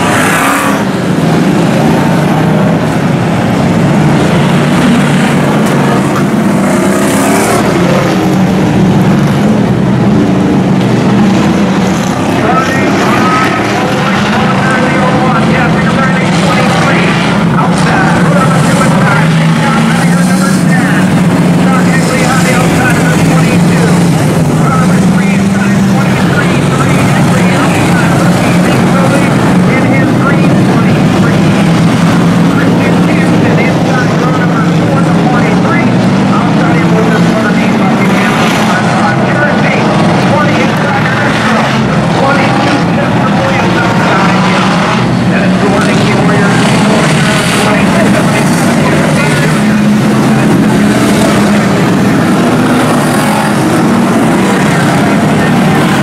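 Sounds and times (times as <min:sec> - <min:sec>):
race car engines droning: 0:00.0 - 0:56.0.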